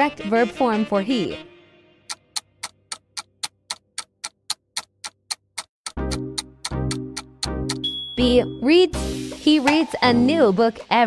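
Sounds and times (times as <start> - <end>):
clock-like ticking: 2.1 - 7.9.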